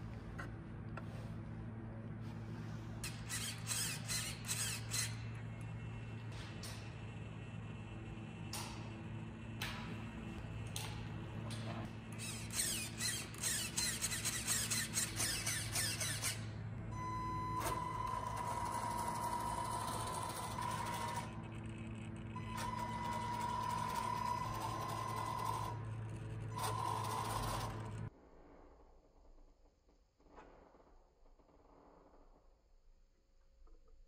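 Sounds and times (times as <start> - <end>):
toy car motor whining: 3.0 - 5.4, 12.1 - 28.1.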